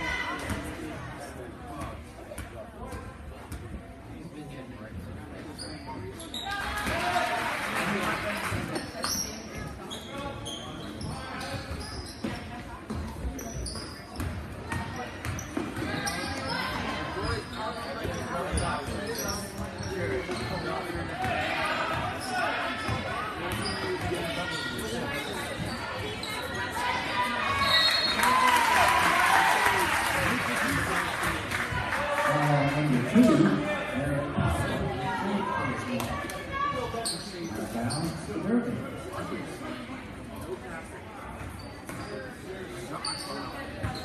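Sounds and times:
spectators' voices: 0.0s - 44.0s.

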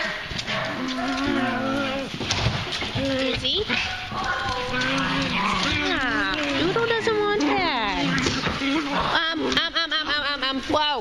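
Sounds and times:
dogs moaning: 0.0s - 9.4s.

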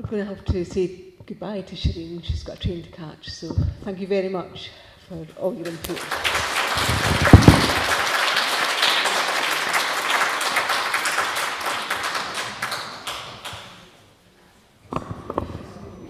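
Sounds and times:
audience applauding: 5.6s - 13.9s.

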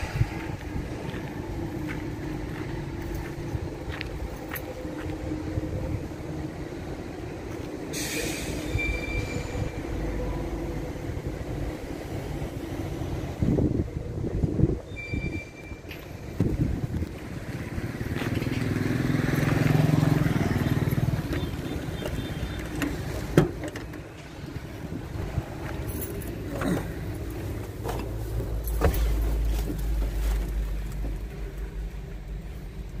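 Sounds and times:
outdoor noise: 0.0s - 33.0s
motor vehicle passing by: 17.2s - 21.8s.

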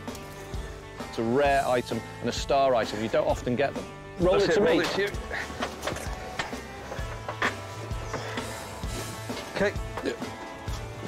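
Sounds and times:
background music with bass notes: 0.0s - 11.0s.

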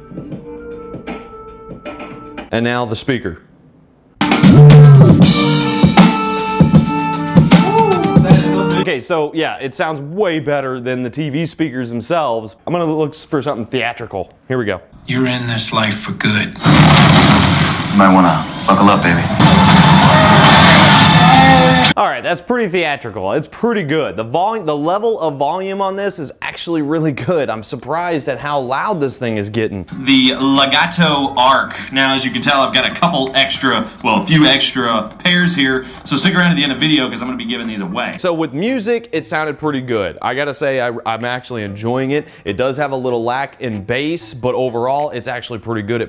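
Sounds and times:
hip hop beat through tv speakers: 0.0s - 2.5s, 4.2s - 8.8s.

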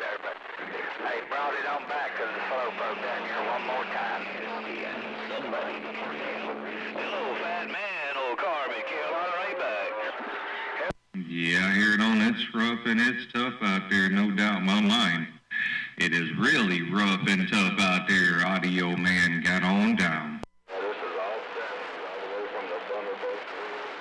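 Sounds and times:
garbled radio voices: 0.0s - 24.0s
man speaking close by: 11.2s - 20.5s.

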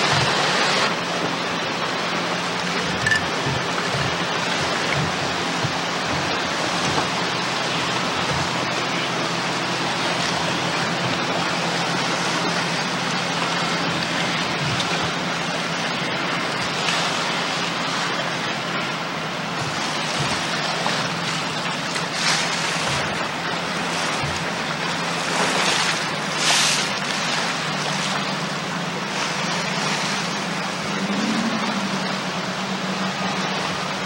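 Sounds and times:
choppy water: 0.0s - 34.0s.

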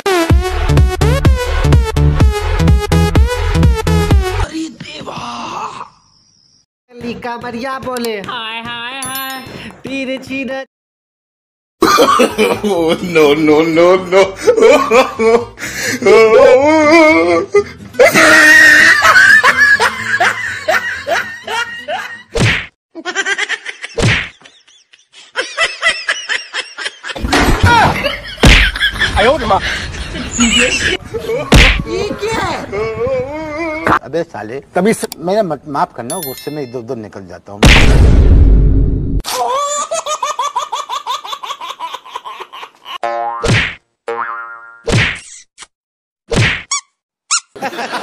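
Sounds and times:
loud whack sound effect: 31.5s - 31.8s, 37.6s - 38.6s, 43.4s - 43.8s, 44.9s - 45.2s, 46.3s - 46.7s
cartoon boing: 43.0s - 44.9s.

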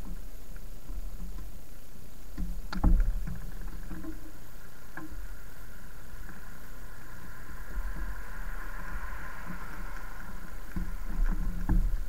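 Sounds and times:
e-bike rolling rumble: 0.0s - 12.0s
short knocks and rattles: 2.3s - 4.3s, 10.7s - 12.0s.

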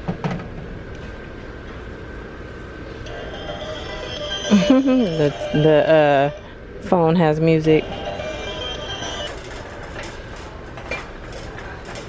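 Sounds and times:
novelty telephone melody: 3.1s - 6.5s, 7.6s - 9.3s.

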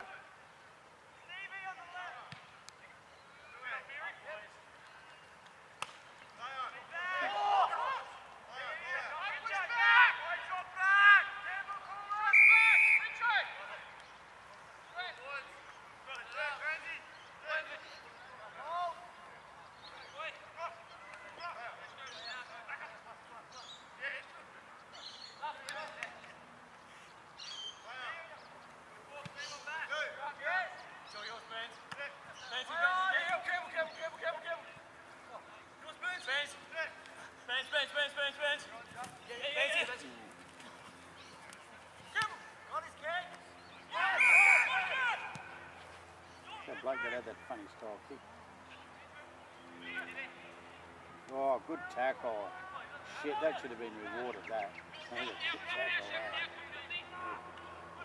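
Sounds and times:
players shouting: 5.8s - 14.0s, 29.0s - 48.0s, 48.7s - 58.0s.

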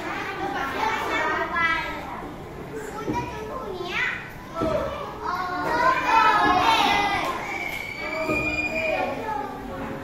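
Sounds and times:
children chattering: 0.0s - 10.0s
children calling out: 4.4s - 9.7s.

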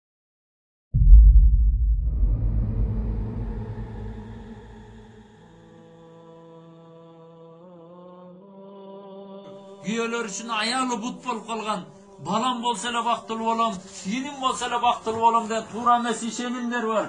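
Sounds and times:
deep low boom: 1.0s - 5.3s
long held chant-like drone: 2.7s - 14.4s.

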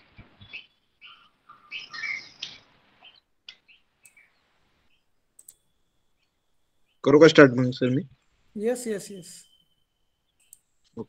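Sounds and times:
faint bird chirping: 0.0s - 11.0s
soft clicks: 2.4s - 4.4s, 5.3s - 6.4s, 10.3s - 11.0s.

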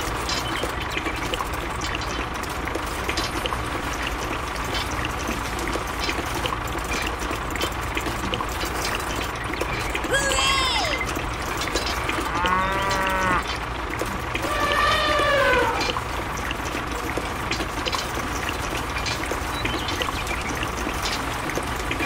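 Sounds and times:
wet concrete pouring: 0.0s - 22.0s
cow mooing: 12.2s - 13.5s, 14.4s - 15.9s.

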